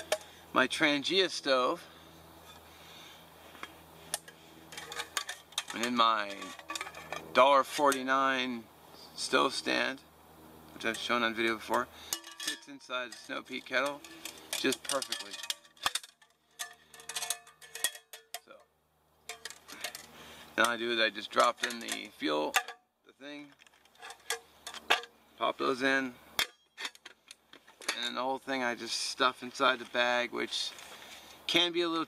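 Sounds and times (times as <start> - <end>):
light metallic clicks and clinks: 11.7 - 18.6, 19.3 - 22.8.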